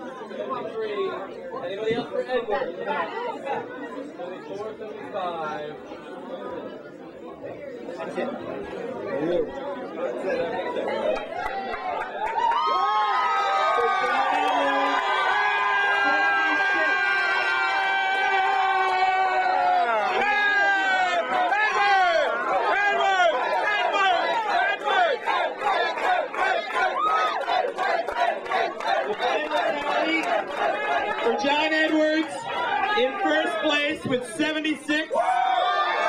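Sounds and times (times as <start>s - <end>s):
crowd cheering and shouting: 10.4s - 36.0s.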